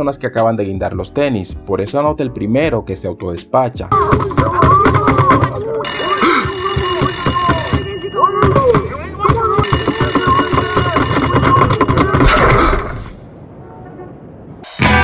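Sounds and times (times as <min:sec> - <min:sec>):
voices: 0:03.8 - 0:12.8, 0:13.5 - 0:14.4
electric telephone bell ringing: 0:05.8 - 0:08.9, 0:09.6 - 0:12.2.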